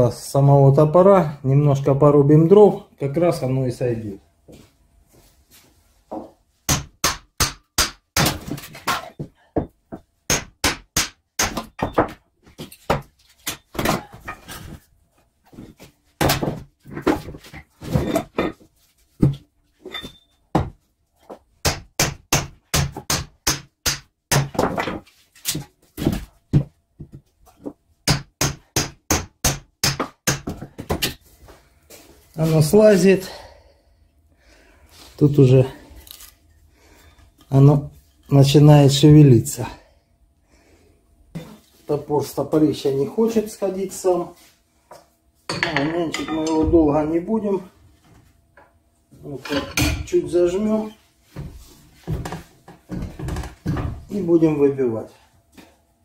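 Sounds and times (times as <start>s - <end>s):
hatchet chopping firewood: 6.7s - 9.2s, 10.3s - 12.1s, 21.6s - 26.2s, 28.1s - 31.2s.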